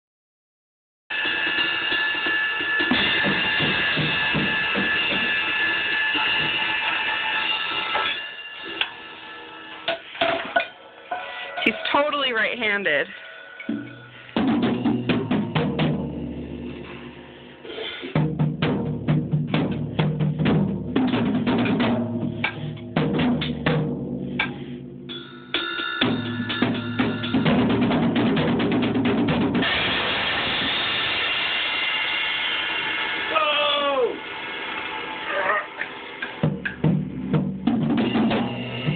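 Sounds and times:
drum kit hits: 1.1s - 8.5s, 13.7s - 17.2s, 18.1s - 33.5s, 36.2s - 38.9s
cymbal crashes: 1.1s - 12.3s, 29.5s - 36.4s, 38.0s - 38.9s.

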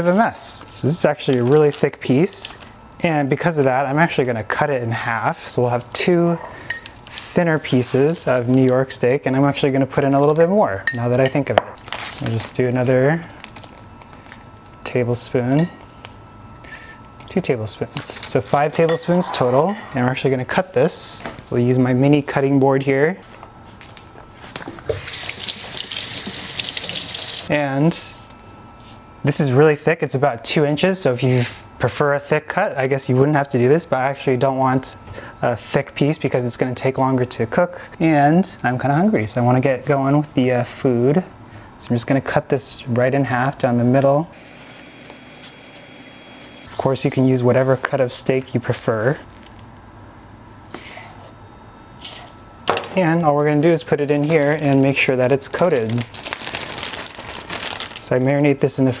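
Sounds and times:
faucet water splashing into sink: 25.2s - 27.5s.

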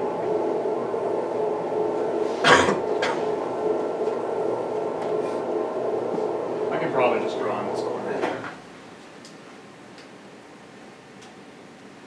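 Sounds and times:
room hum: 0.0s - 12.0s
person coughing: 2.4s - 3.2s.

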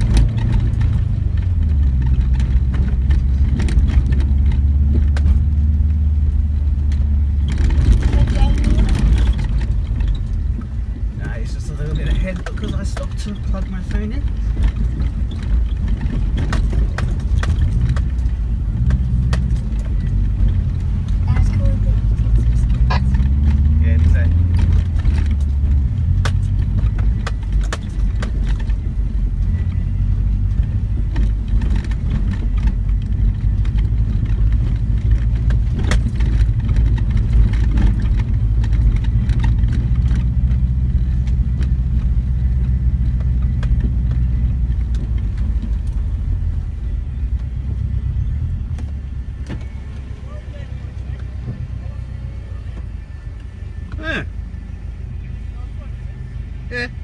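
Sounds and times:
car body rattling and knocking: 0.0s - 55.5s
car engine droning: 0.0s - 57.0s.

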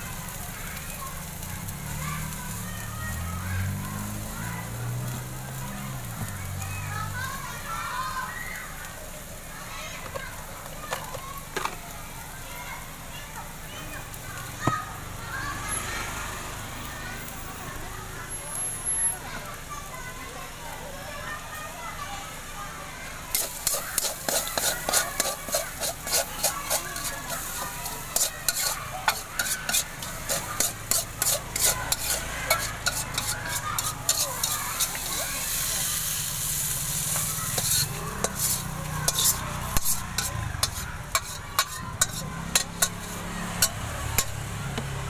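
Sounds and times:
metal spatula scraping a wok: 23.3s - 44.5s.

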